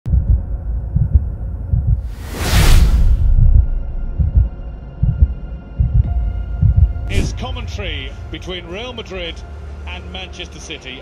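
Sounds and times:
deep bass thumps: 0:00.1 - 0:02.1, 0:03.2 - 0:07.5
whoosh sweeping up: 0:02.0 - 0:03.7.

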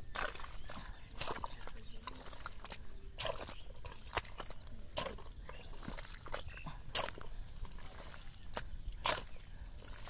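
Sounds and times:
hoe blade smacking wet mud: 0:00.0 - 0:10.0
mud squelching: 0:00.0 - 0:10.0.

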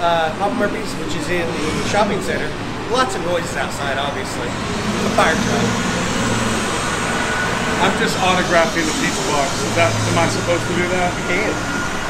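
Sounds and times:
diesel engine rumbling: 0:00.0 - 0:12.0.

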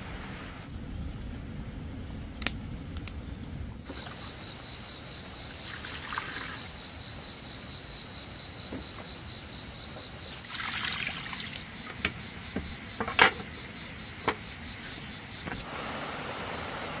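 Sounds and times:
night insects trilling: 0:00.4 - 0:17.0.

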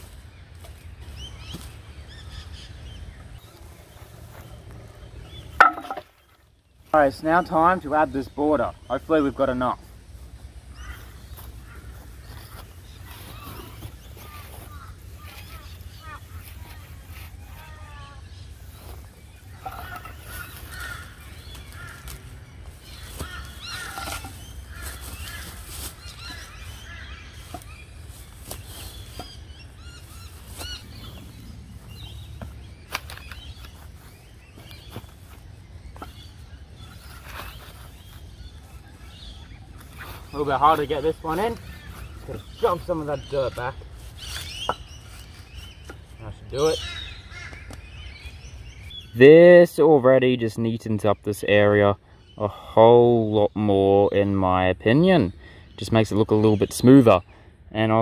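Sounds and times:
birds calling: 0:00.0 - 0:58.0
wooden boards knocking and scraping: 0:05.6 - 0:06.4, 0:23.2 - 0:24.4
steady low rumble: 0:18.2 - 0:49.0.

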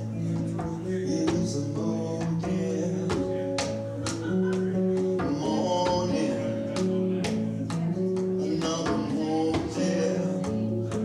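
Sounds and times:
guitar strumming chords: 0:00.0 - 0:11.0.

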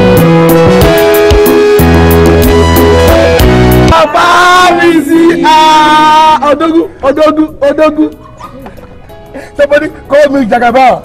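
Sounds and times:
background music: 0:00.0 - 0:11.0
voices hailing: 0:03.9 - 0:10.8.

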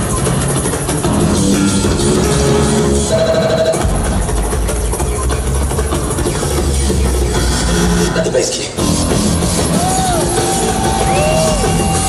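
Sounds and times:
loud electronic music: 0:00.0 - 0:12.0.

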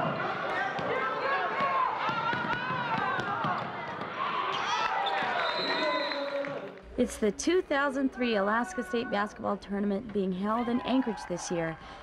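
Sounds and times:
crowd shouting and chattering: 0:00.0 - 0:06.9.

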